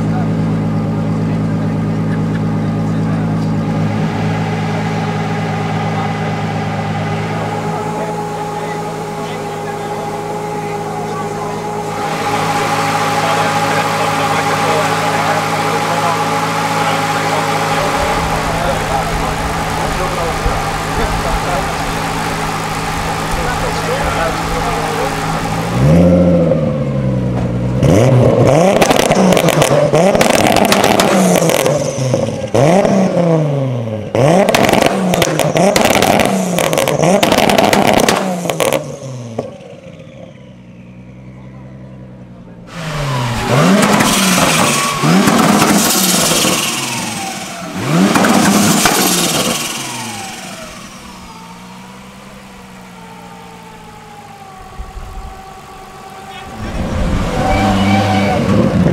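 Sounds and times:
car engine idling and revving: 0.0 - 58.9
exhaust cracks: 0.0 - 58.9
falling whine: 0.6 - 27.5, 34.6 - 58.9.

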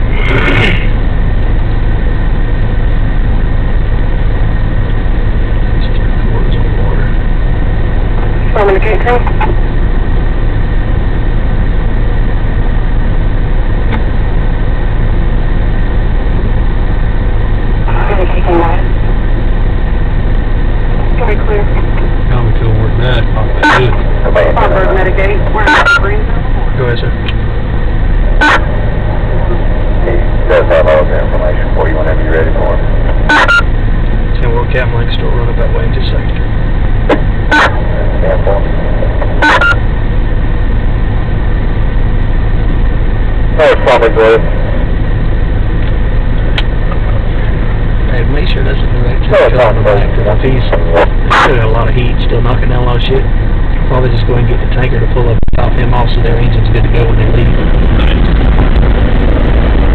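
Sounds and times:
faint voices: 0.0 - 1.0, 5.8 - 7.2, 21.0 - 27.4, 28.2 - 33.5, 34.3 - 36.4, 37.6 - 39.6, 43.5 - 44.9, 46.6 - 53.2, 53.8 - 59.0
vehicle engine idling: 0.0 - 59.9.

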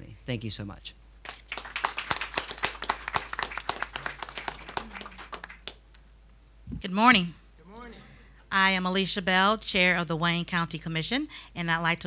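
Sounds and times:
people applauding: 1.2 - 5.9.

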